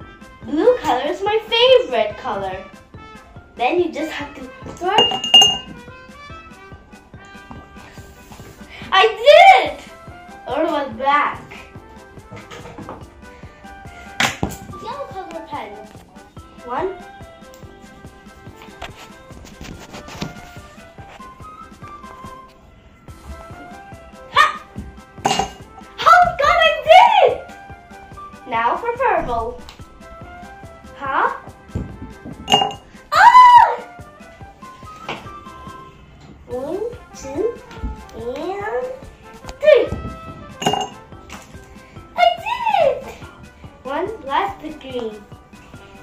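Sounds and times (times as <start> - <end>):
background music with sustained notes: 0.0 - 46.0
pen clinking into glass pitcher: 5.0 - 5.7, 32.5 - 32.8, 40.6 - 41.0.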